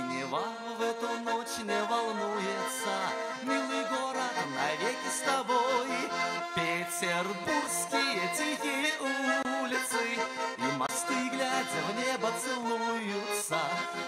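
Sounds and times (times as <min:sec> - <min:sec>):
button accordion folk melody: 0:00.0 - 0:14.0.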